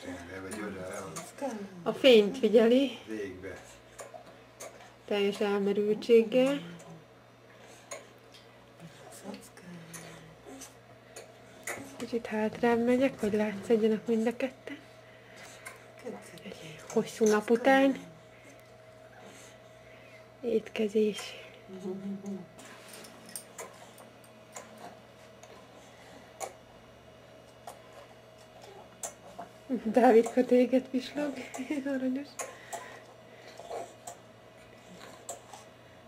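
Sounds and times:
steady low hum: 0.0s - 36.0s
babies sucking on bottles: 32.3s - 35.8s.

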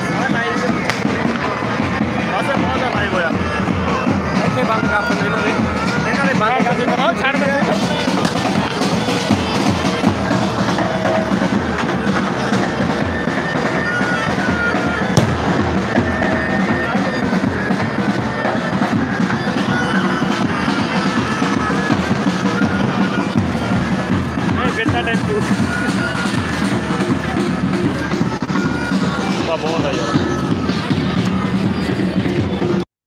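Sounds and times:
bagpipes playing: 0.0s - 32.4s
drums beating: 0.0s - 32.9s.

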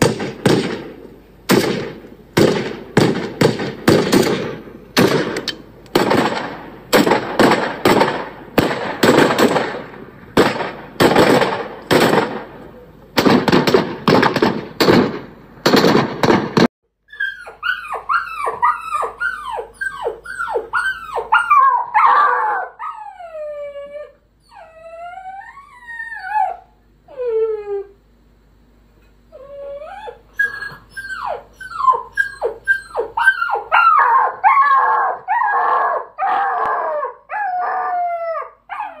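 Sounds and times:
rapid loud bangs: 0.0s - 12.6s, 13.2s - 16.7s
dogs whining and howling: 17.1s - 28.1s, 29.3s - 39.0s.

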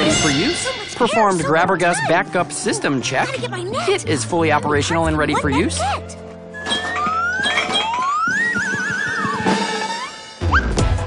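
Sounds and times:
whistle-like tone sliding upward: 6.6s - 10.8s.

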